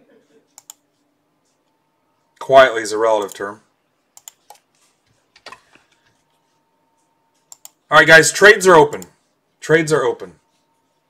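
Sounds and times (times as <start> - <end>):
computer keyboard clicks: 0.6 - 0.8, 4.2 - 4.6, 7.5 - 7.8.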